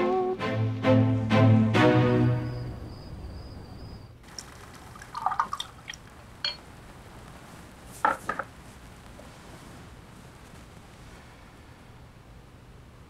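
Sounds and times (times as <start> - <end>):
string music: 0.0 - 3.0
wine sloshing in glass: 4.3 - 6.6.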